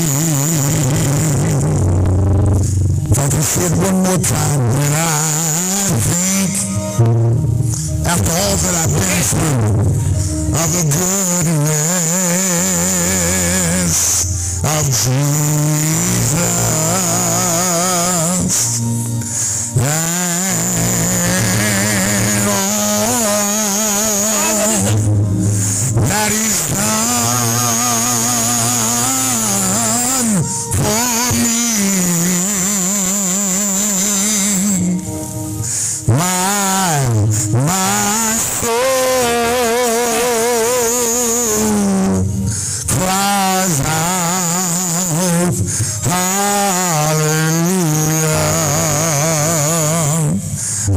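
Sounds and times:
low accompanying tones: 0:00.0 - 0:50.9
man singing gospel song: 0:00.0 - 0:50.9.

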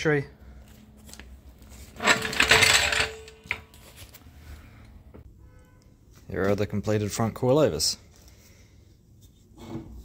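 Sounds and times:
metallic jingling and rattling: 0:02.0 - 0:03.6.

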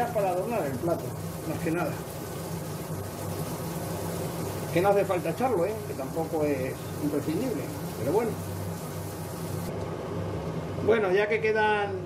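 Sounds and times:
kitchen appliances humming: 0:00.0 - 0:10.4.

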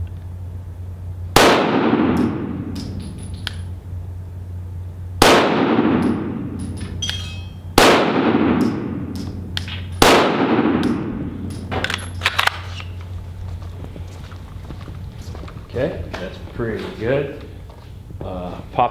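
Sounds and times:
brass casings tinking on floor: 0:06.6 - 0:07.7
pistol shots echoing indoors: 0:10.0 - 0:11.2.

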